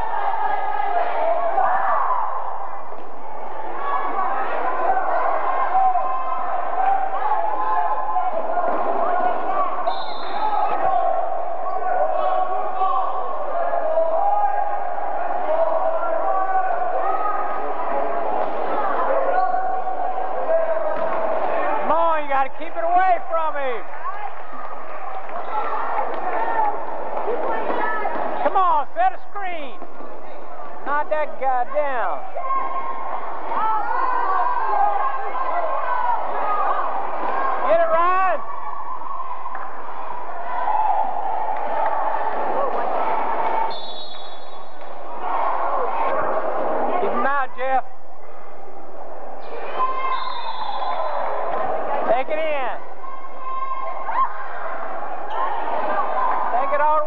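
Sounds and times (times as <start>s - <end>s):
crowd hubbub: 0.0s - 57.0s
people calling out: 49.4s - 57.0s.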